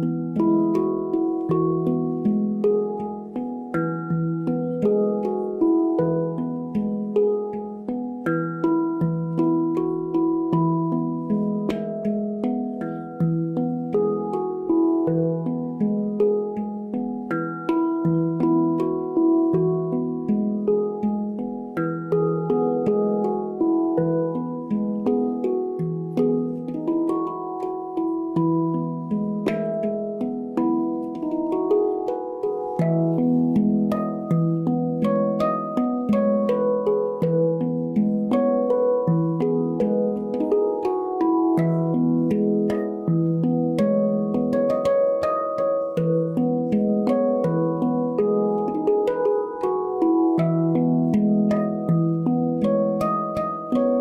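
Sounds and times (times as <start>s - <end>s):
handpan melody: 0.0s - 54.0s.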